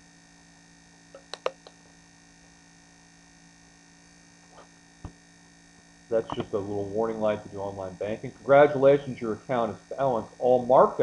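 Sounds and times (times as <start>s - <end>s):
faint mains hum: 0.0s - 11.0s
computer mouse clicks: 1.2s - 1.8s.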